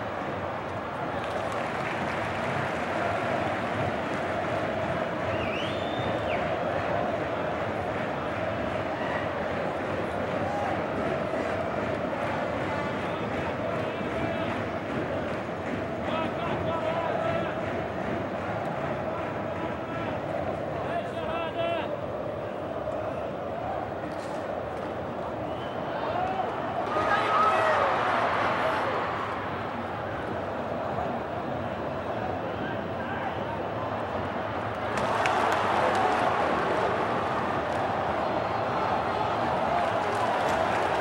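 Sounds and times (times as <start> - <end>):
stadium crowd singing and chanting: 0.0 - 41.0.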